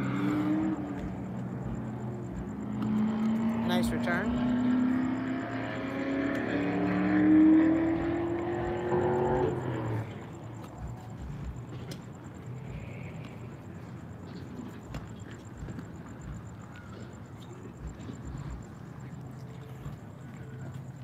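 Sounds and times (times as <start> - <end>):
distant vehicle engine accelerating: 0.0 - 20.8
steady low hum: 0.0 - 21.0.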